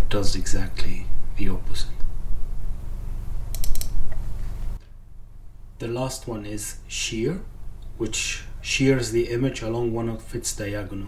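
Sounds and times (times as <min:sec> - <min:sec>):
steady low hum: 0:00.0 - 0:11.0
sharp computer clicks: 0:03.5 - 0:04.0.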